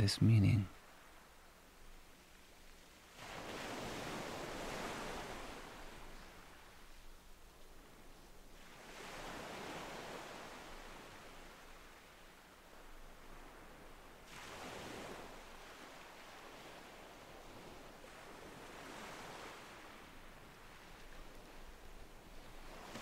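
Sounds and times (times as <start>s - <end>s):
faint ocean surf: 0.0s - 23.0s.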